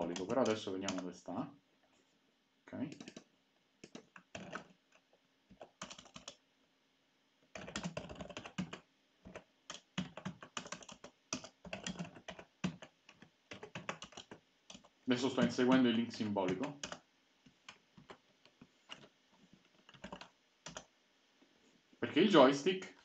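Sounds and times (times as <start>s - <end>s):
computer keyboard typing: 0.0s - 1.1s, 2.9s - 6.4s, 7.5s - 15.8s, 16.4s - 20.9s.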